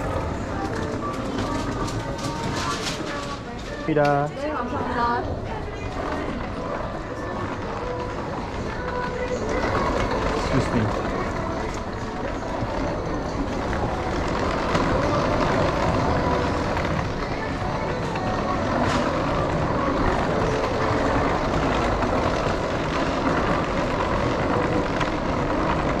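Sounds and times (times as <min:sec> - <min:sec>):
murmur of distant voices: 0:00.0 - 0:26.0
shopping concourse hum: 0:00.0 - 0:26.0.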